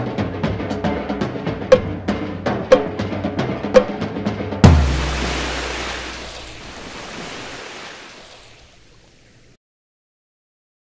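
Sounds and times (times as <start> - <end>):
bass drum boom: 4.6 - 6.3.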